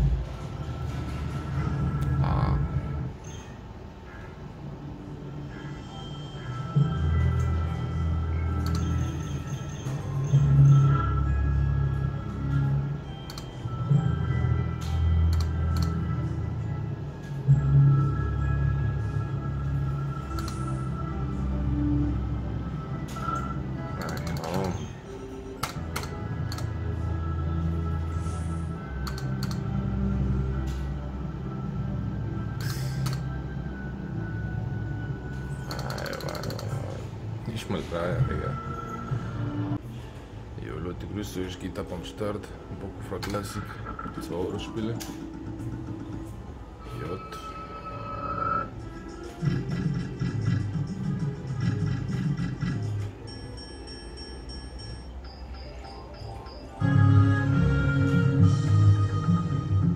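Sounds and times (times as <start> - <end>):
slot machine music: 0.1 - 39.8, 42.2 - 59.9.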